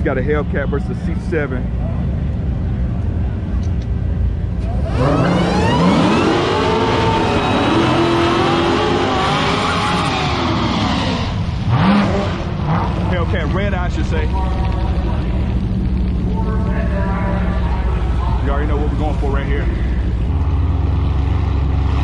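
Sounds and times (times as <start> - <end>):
cars idling: 0.0 - 22.0
drag car engine revving: 4.3 - 22.0.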